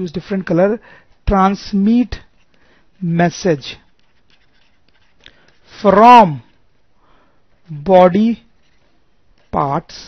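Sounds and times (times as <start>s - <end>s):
stylus scratching on tablet: 1.5s - 6.6s, 8.4s - 10.0s.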